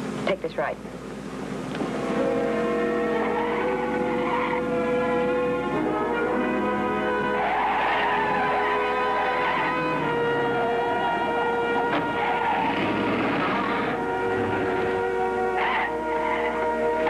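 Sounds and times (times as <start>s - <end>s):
dramatic orchestral brass chords: 1.8s - 17.0s.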